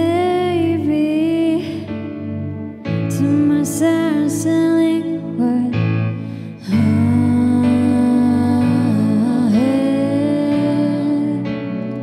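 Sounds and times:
person singing pop ballad: 0:00.0 - 0:12.0
soft instrumental accompaniment: 0:00.0 - 0:12.0.

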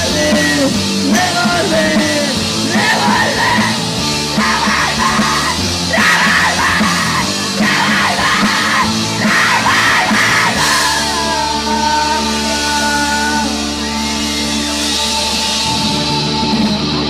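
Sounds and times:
singer yelling: 0:00.0 - 0:15.6
punk band playing: 0:00.0 - 0:17.0.

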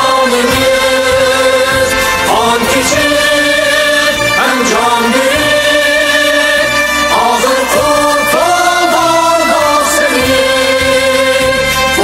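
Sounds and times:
musical accompaniment: 0:00.0 - 0:12.0
person singing: 0:00.0 - 0:12.0.

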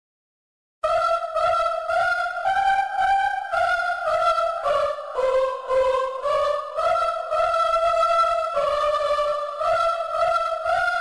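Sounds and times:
sampled choir holding notes: 0:00.8 - 0:11.0.

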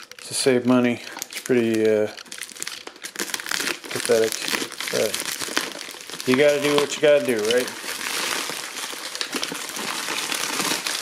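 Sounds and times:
plastic bag and bubble wrap crinkling: 0:00.0 - 0:11.0.

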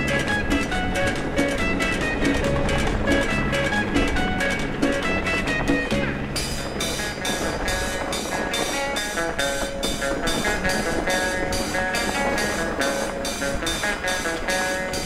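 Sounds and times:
low steady rumble: 0:00.0 - 0:13.7
background music with quick beat: 0:00.0 - 0:15.0.

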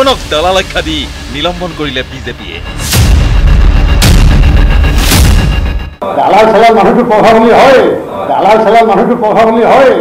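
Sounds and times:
deep booming bass: 0:00.0 - 0:06.0
sharp swooshing hits: 0:02.6 - 0:06.0.

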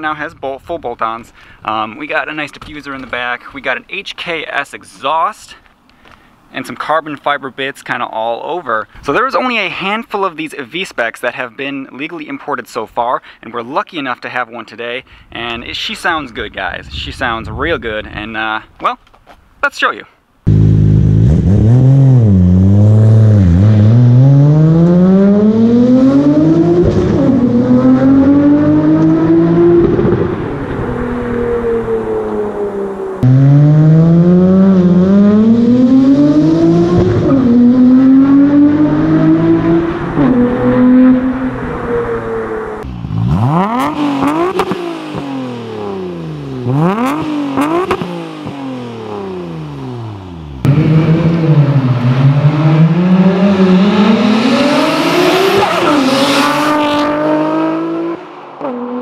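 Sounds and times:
car engine accelerating: 0:20.5 - 0:59.0
car passing by: 0:51.6 - 0:59.0.

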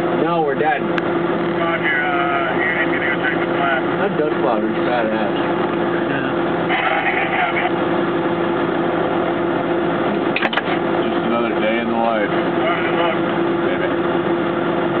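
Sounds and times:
idling vehicle engine hum: 0:00.0 - 0:15.0
muffled voices: 0:01.5 - 0:07.8, 0:11.0 - 0:14.1.

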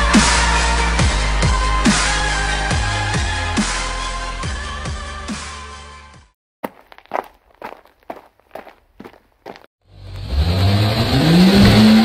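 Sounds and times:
footsteps: 0:06.6 - 0:09.7
car engine starting and revving: 0:09.9 - 0:12.0.

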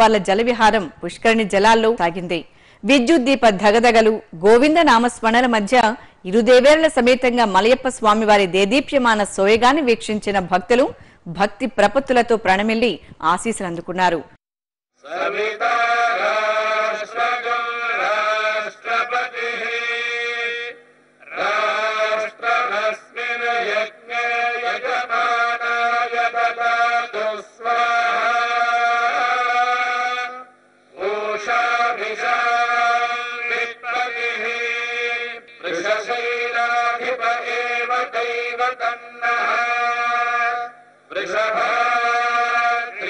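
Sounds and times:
devotional chanting: 0:15.0 - 0:43.0.

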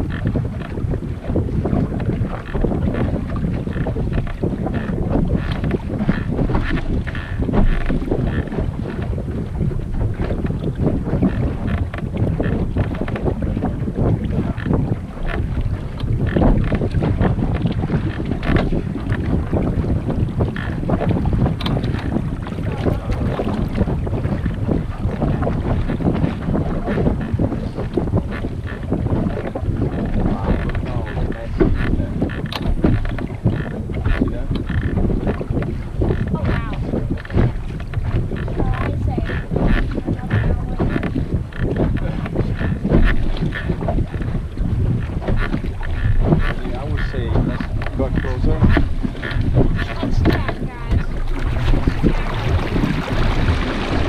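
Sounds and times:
water rushing along hull: 0:00.0 - 0:54.0
wind buffeting microphone: 0:00.0 - 0:54.0.

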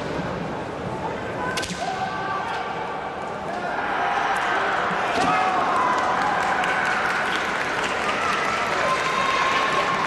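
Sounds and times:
bamboo swords cracking: 0:01.6 - 0:01.9.

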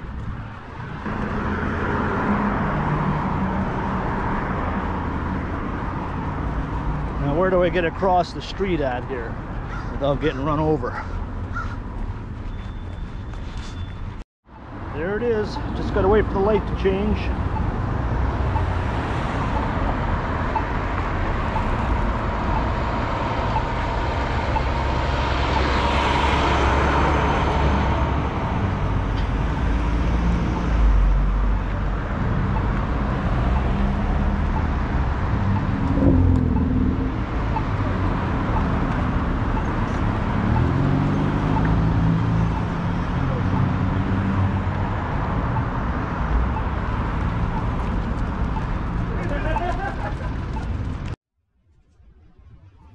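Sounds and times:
car engines and tyre noise: 0:00.0 - 0:52.9.

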